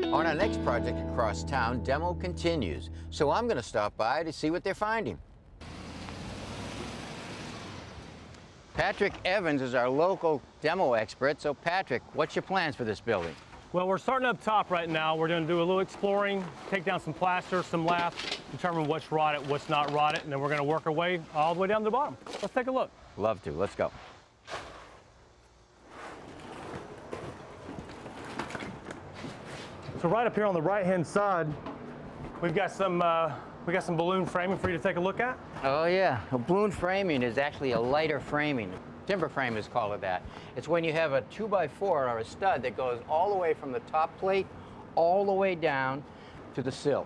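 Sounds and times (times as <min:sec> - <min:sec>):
road noise hiss: 0:05.6 - 0:26.1, 0:37.1 - 0:47.0
footsteps: 0:23.9 - 0:30.2
scraping rustle of plaster: 0:25.8 - 0:29.9.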